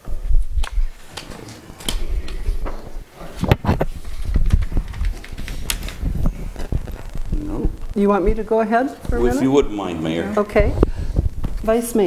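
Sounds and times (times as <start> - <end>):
paper shuffling and rustling: 1.0 - 7.9.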